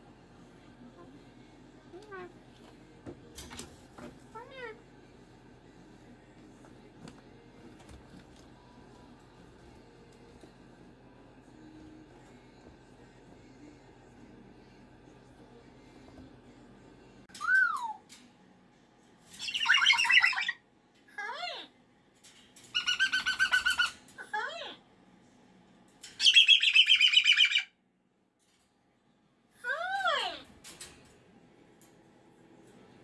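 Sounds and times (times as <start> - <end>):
cockatoo screeching: 19.4 - 20.6, 22.7 - 24.6, 26.2 - 27.7.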